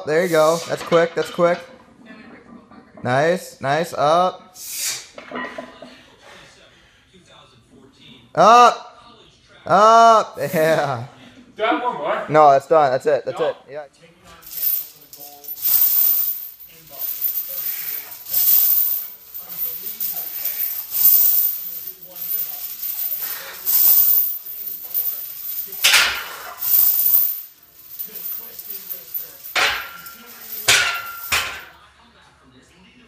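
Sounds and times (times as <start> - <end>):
chains clinking and rattling: 14.4 - 31.7.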